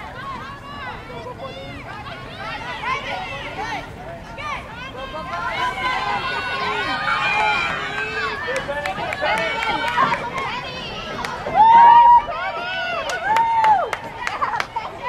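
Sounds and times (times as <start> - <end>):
crowd shouting and calling out: 0.0 - 15.0
loud drawn-out shout: 1.7 - 14.4.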